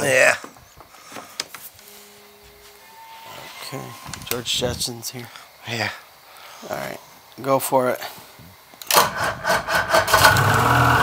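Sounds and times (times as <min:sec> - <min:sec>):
faint electrical hum: 0:00.0 - 0:09.1.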